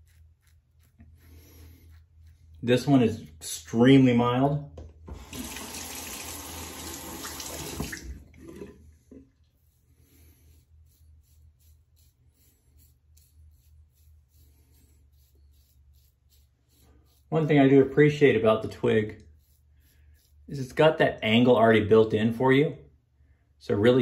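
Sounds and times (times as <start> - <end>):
razor scraping skin: 0.0 - 2.8, 9.6 - 18.3, 19.2 - 20.8
tap water running into sink: 5.1 - 8.8.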